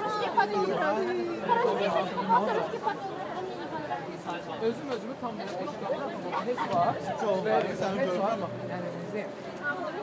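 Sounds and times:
overlapping chatter of people: 0.0s - 10.0s.

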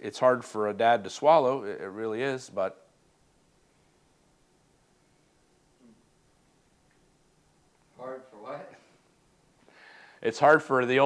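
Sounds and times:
breath drawn in: 9.6s - 10.2s.

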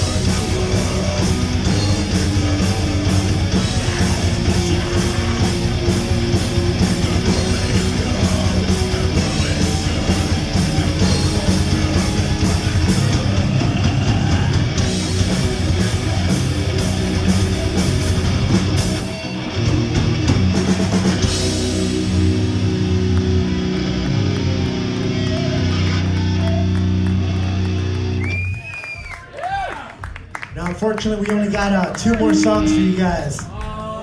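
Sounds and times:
rapid drum and cymbal hits: 0.0s - 23.5s
distorted electric guitars: 0.0s - 28.3s, 32.0s - 33.4s
bass guitar: 0.0s - 28.7s, 31.6s - 33.6s.

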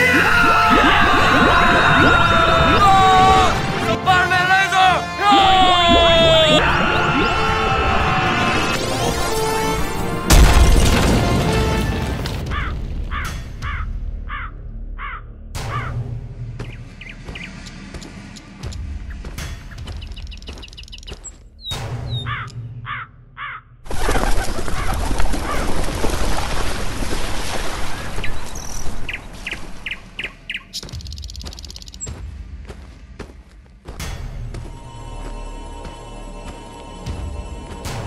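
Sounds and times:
bird harsh caw-like calls: 12.5s - 16.0s, 19.7s - 23.8s
small bird chirping: 16.6s - 22.6s, 28.5s - 32.2s.

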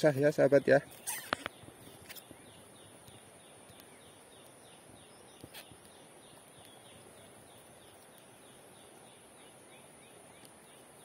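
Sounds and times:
steady high hiss: 0.0s - 11.0s
brief rustle: 0.9s - 2.3s
quick falling chirp: 1.0s - 1.5s.

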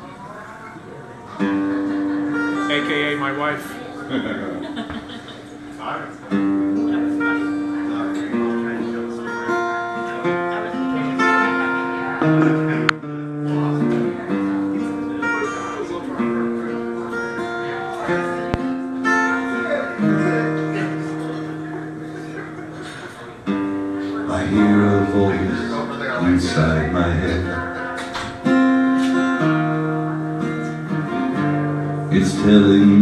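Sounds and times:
acoustic guitar chords: 1.3s - 33.0s.

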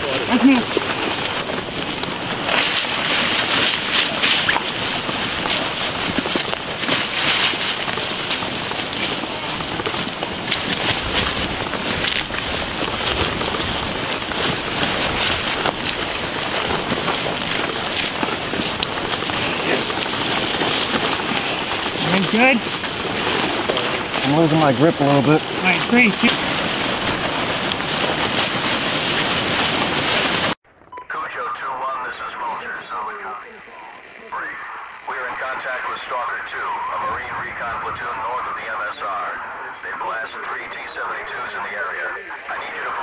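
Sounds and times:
gear jostling: 0.0s - 30.6s
litter dragged through grass: 0.0s - 30.6s.

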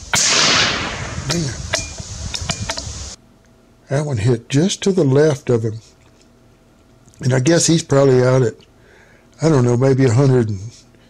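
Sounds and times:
rifle shot: 0.1s - 2.0s.

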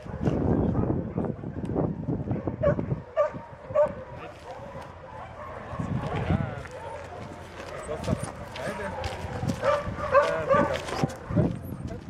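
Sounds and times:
man's low voice: 0.0s - 12.0s.

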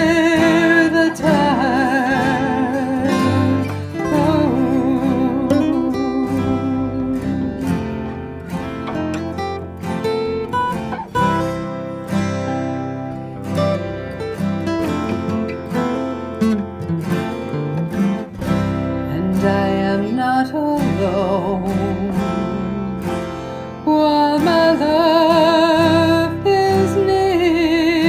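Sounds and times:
acoustic guitar picked and strummed: 0.0s - 28.0s.

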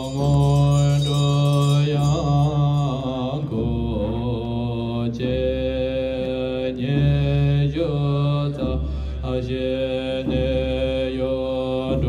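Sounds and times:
men chanting in deep voices: 0.0s - 12.0s.

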